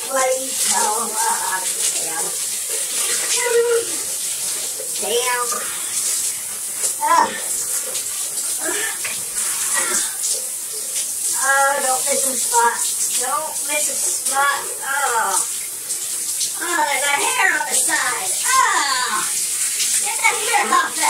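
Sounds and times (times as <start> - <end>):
shower running: 0.0 - 21.0.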